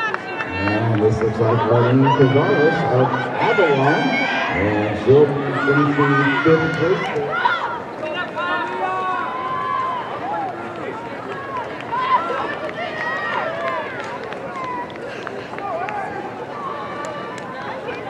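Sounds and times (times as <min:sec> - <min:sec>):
spectators shouting and cheering: 0:00.0 - 0:18.0.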